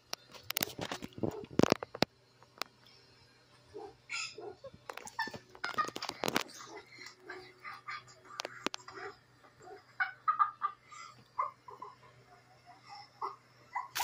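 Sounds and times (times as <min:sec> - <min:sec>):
steady low hum: 0:00.0 - 0:14.0
high-pitched vocal squawks: 0:04.1 - 0:05.3.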